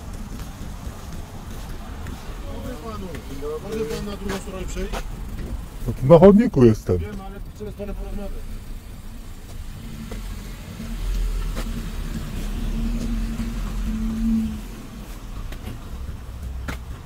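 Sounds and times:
car engine driving past: 1.4 - 16.4.

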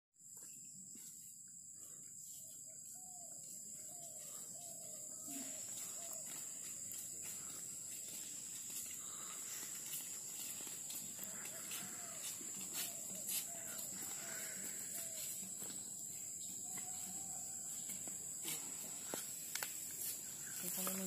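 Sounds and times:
high-pitched insect drone: 0.3 - 21.0
faint animal calls: 2.4 - 6.8, 11.2 - 15.5.

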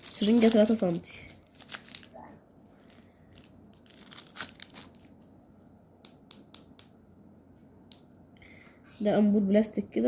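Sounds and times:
plastic crinkling: 0.0 - 5.3.

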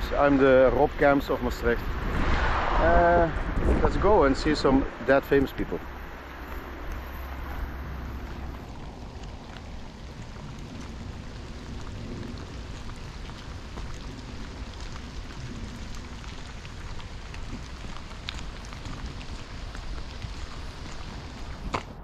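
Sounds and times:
steady rain falling: 0.0 - 22.0
wind rumble on microphone: 0.0 - 22.0.

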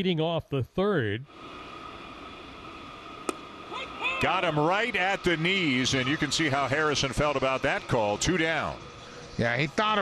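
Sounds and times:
ballpark background hiss: 0.0 - 10.0.

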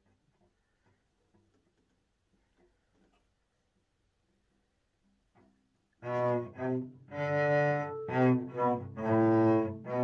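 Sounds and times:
cello playing slow tune: 5.9 - 10.0.

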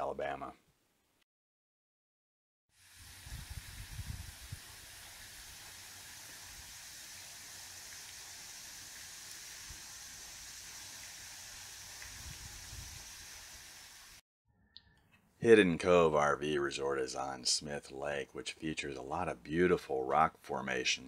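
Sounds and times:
waterfall splashing into lake: 2.8 - 14.2.

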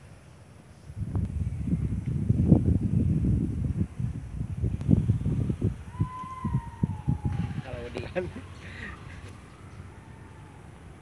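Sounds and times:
wind buffeting microphone: 0.8 - 11.0.

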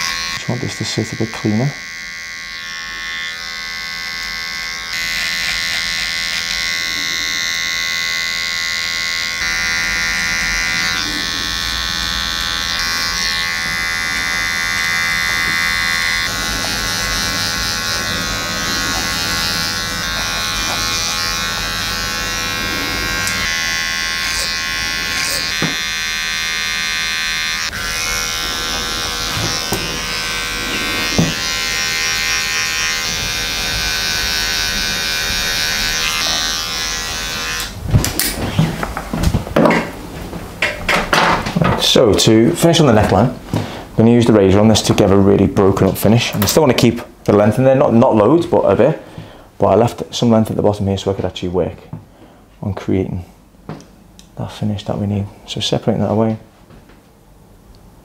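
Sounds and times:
hair trimmer buzzing: 0.0 - 38.8.

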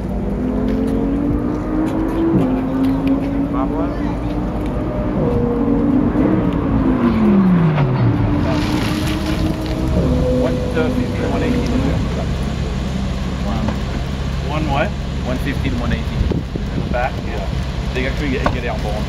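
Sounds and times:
car engine slowing down: 0.0 - 19.0.

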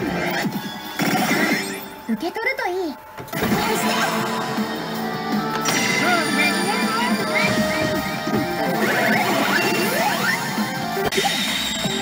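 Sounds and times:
slot machine music and effects: 0.0 - 12.0.

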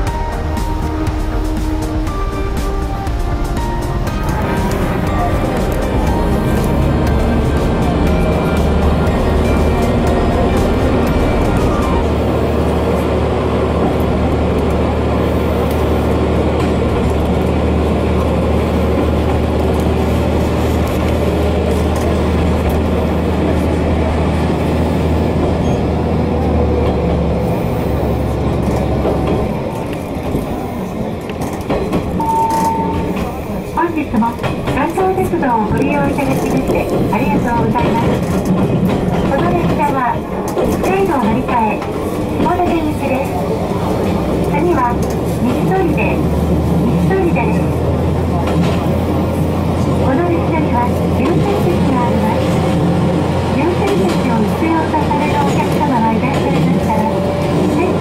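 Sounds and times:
diesel railcar engine hum: 0.0 - 58.0
rail clicks: 0.0 - 58.0.

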